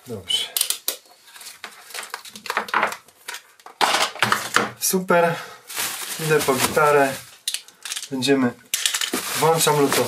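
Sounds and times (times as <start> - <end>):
plastic rustling: 5.6 - 10.0.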